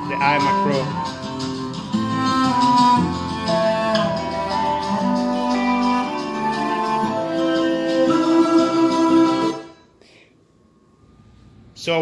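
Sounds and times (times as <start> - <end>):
instrumental music through speakers: 0.0 - 9.9.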